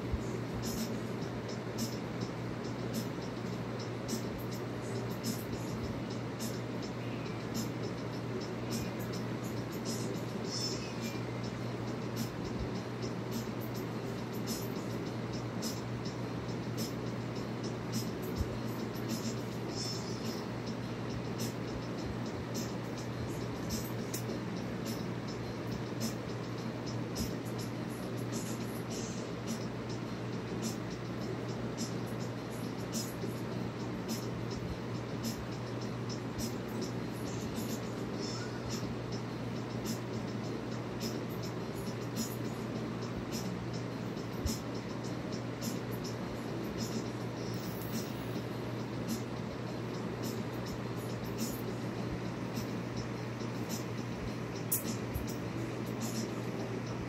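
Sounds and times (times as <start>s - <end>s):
faint irregular ticks and clicks: 0.0s - 57.0s
low hum and hiss: 0.0s - 57.0s.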